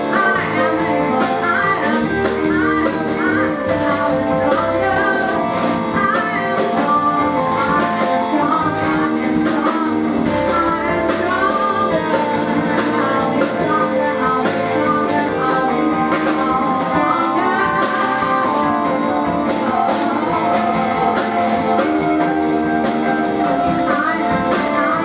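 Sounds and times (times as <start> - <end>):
drum kit with cymbals: 0.0 - 25.0
electric bass: 0.0 - 25.0
electric guitar: 0.0 - 25.0
electric piano: 0.0 - 25.0
woman singing: 0.0 - 25.0.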